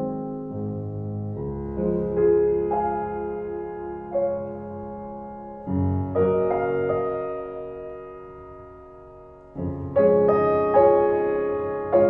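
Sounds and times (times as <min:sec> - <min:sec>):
piano chords ringing: 0:00.0 - 0:12.0.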